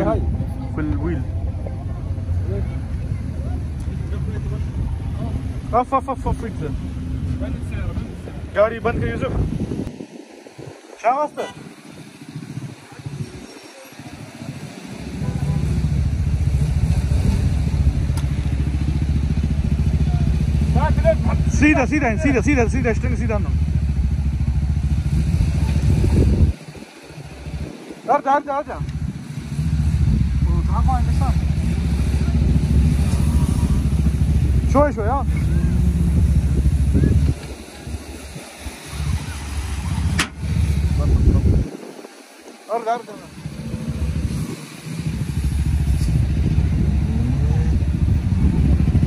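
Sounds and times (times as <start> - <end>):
vehicle engine droning: 0.0 - 49.0.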